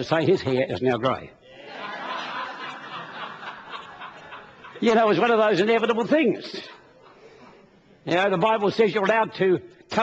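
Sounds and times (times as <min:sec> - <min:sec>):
preacher speaking: 0:00.0 - 0:01.5, 0:04.6 - 0:07.0, 0:08.0 - 0:10.0
congregation laughing: 0:01.5 - 0:05.7.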